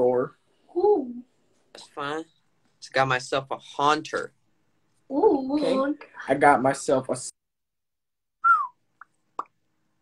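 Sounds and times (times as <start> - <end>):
short falling whistle-like tone: 8.4 - 8.8.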